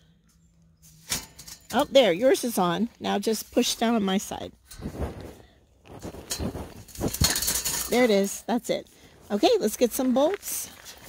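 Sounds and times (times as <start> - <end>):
faint metal scraping: 0.3 - 10.0.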